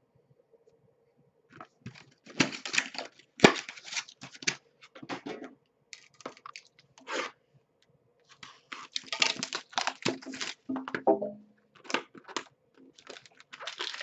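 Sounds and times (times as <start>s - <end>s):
cardboard tearing and scraping: 13.0s - 14.0s.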